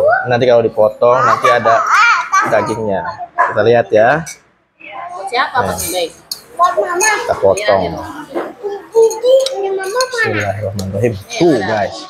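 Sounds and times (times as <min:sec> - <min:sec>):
cutlery clinking against ceramic bowl: 0:06.3 - 0:07.9, 0:09.0 - 0:11.0.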